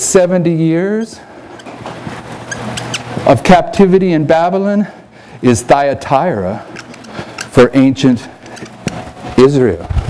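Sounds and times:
low steady hum: 0:00.0 - 0:10.0
marker squeak: 0:02.4 - 0:03.2
marker writing on whiteboard: 0:02.4 - 0:03.3.

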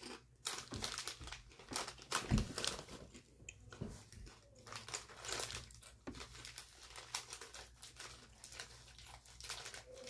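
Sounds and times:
chip bag crinkling: 0:00.0 - 0:10.0.

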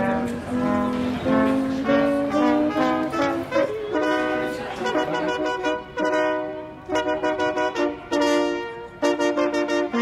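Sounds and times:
brass and saxophone playing: 0:00.0 - 0:10.0.

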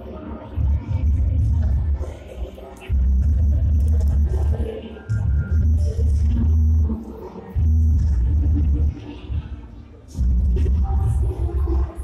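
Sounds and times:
dj music with booming bass: 0:02.9 - 0:09.6.

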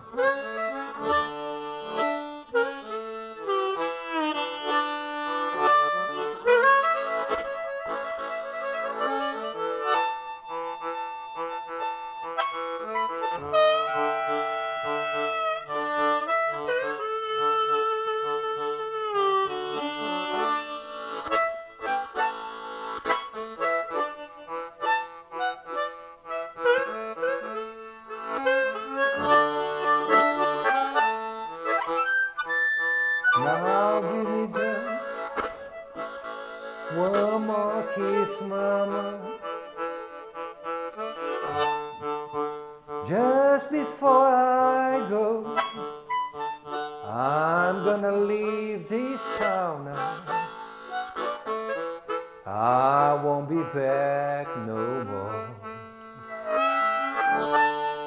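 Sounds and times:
blues harmonica playing: 0:00.0 - 0:58.0.

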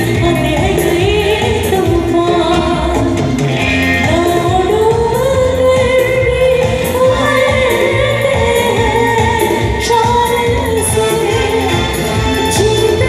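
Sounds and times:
live pop band playing: 0:00.0 - 0:13.0.

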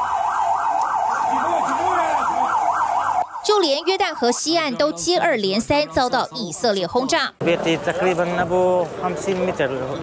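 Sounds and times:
low siren wail: 0:00.0 - 0:07.1
siren yelping: 0:00.0 - 0:07.4.

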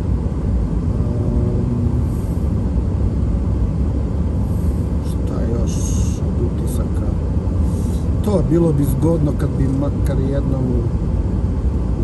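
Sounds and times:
car driving cabin rumble: 0:00.0 - 0:12.0.

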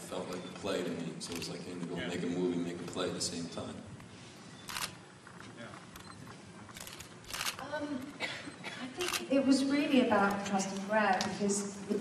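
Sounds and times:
hall background noise: 0:00.0 - 0:12.0
camera shutter click: 0:04.7 - 0:05.0, 0:06.7 - 0:07.6, 0:09.0 - 0:09.3.

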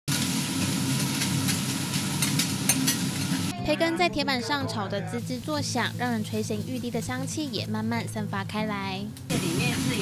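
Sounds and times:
bacon sizzling on a griddle: 0:00.1 - 0:03.5.

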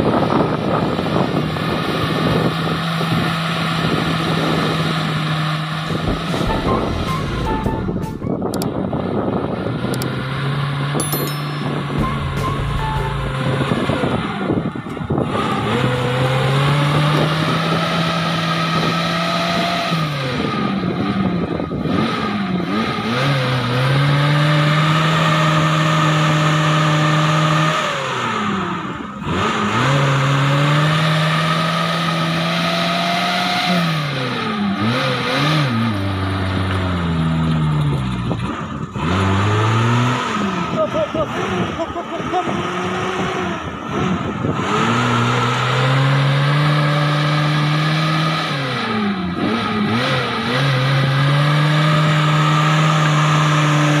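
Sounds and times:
car engine revving hard: 0:12.2 - 0:54.0.

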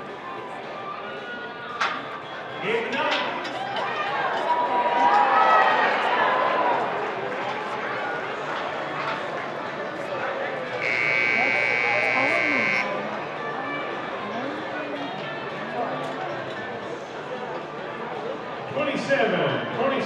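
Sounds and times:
crowd cheering: 0:00.0 - 0:14.5
buzzer high-pitched tone: 0:10.8 - 0:13.0.

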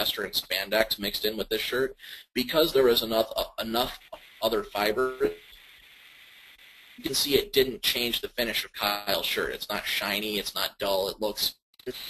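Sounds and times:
man speaking: 0:00.0 - 0:05.5, 0:07.0 - 0:12.0
faint steady hiss: 0:00.0 - 0:12.0.

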